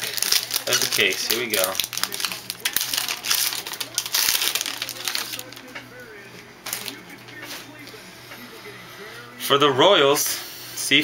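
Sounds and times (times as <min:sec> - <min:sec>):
wrapper crinkling and tearing: 0:00.0 - 0:05.7, 0:06.6 - 0:07.0.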